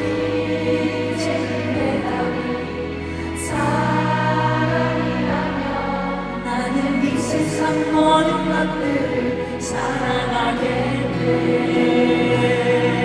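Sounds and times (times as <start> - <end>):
male vocal group singing in harmony: 0.0 - 13.0
musical accompaniment: 0.0 - 13.0.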